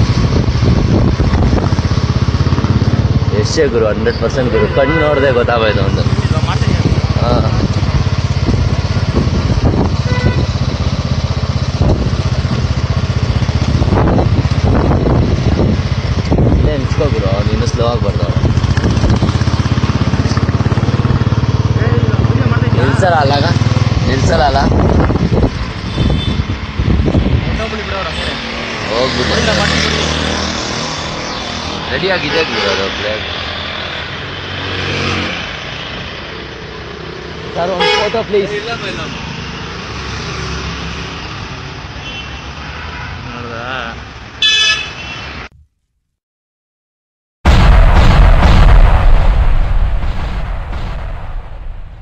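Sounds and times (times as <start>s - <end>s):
road traffic rumble: 0.0s - 45.5s
loud vehicle horn toot: 4.2s - 6.1s, 10.0s - 10.6s, 25.8s - 26.5s, 32.2s - 33.0s, 37.8s - 38.3s, 42.0s - 43.2s, 44.4s - 45.4s.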